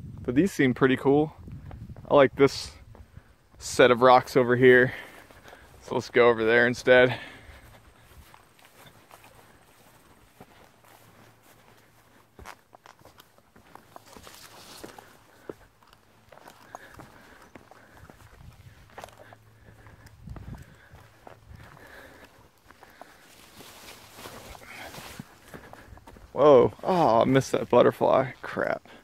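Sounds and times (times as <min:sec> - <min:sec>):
footsteps on rocky trail: 0:01.4 - 0:29.0.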